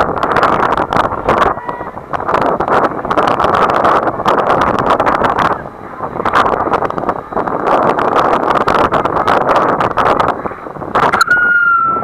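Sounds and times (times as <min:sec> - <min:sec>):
wind buffeting microphone: 0:00.0 - 0:12.0
high whistle-like tone: 0:11.1 - 0:12.0.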